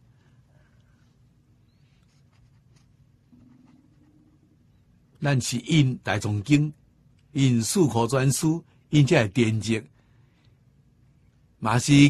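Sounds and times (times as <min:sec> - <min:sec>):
faint steady tone: 0:00.0 - 0:11.7.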